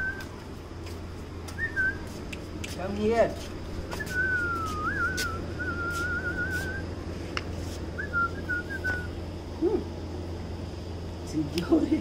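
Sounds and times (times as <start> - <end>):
person whistling: 1.6 - 2.0, 4.0 - 6.8, 8.0 - 9.1.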